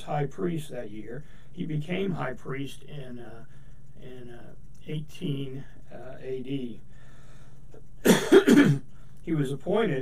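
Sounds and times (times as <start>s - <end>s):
man coughing: 8.0s - 8.8s.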